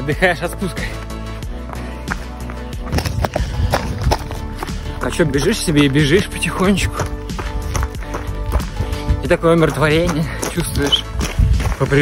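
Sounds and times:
background music: 0:00.0 - 0:12.0
footfalls on gravel: 0:00.6 - 0:12.0.

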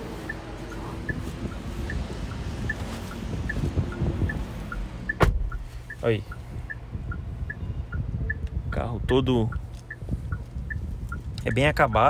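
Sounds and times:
turn signal ticking: 0:00.0 - 0:12.0.

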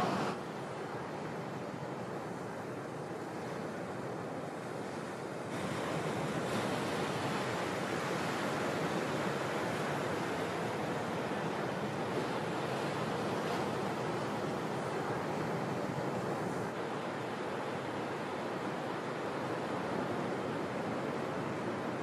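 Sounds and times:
ocean waves breaking: 0:00.0 - 0:22.0.

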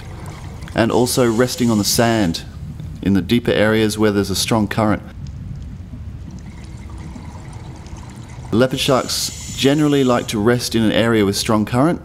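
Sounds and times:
underwater rush of water: 0:00.0 - 0:02.7, 0:06.0 - 0:10.8
faint clicks: 0:05.1 - 0:06.5.

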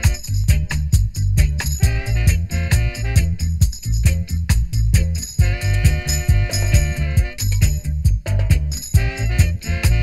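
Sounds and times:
reggae music: 0:00.0 - 0:10.0.

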